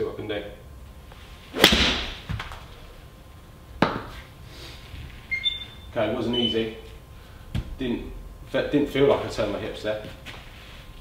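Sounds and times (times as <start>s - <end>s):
golf club striking ball: 1.6s - 2.3s.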